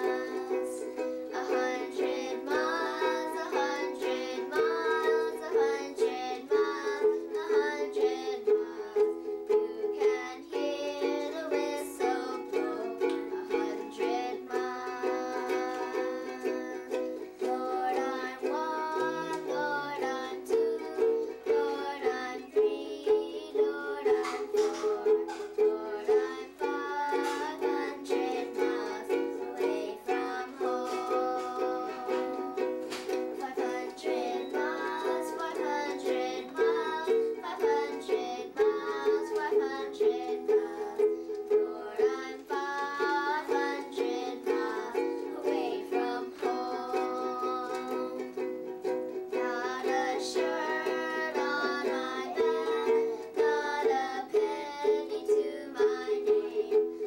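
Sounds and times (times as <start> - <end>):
girl singing: 0.0 - 57.0
ukulele strumming: 0.0 - 57.0.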